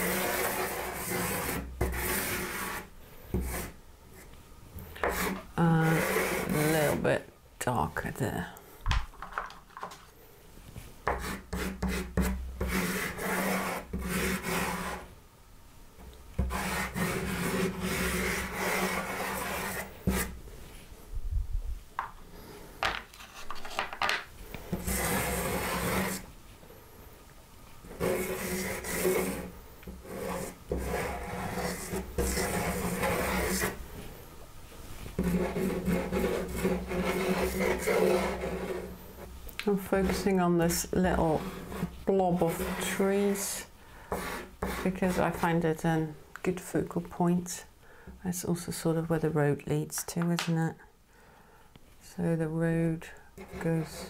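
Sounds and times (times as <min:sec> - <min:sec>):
pastel stick scraping paper: 0:00.0 - 0:04.3, 0:05.0 - 0:07.0, 0:11.1 - 0:15.1, 0:16.4 - 0:20.3, 0:24.7 - 0:26.2, 0:27.9 - 0:33.8, 0:35.2 - 0:38.9, 0:39.8 - 0:45.6.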